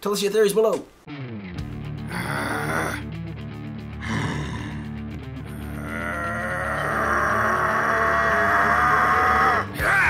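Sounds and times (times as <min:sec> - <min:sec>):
music: 0:01.0 - 0:10.0
roaring vocal sound: 0:02.0 - 0:03.2, 0:04.0 - 0:10.0.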